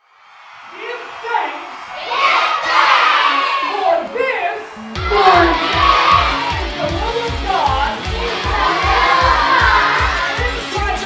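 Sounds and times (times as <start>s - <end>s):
children shouting and cheering: 0.2s - 11.0s.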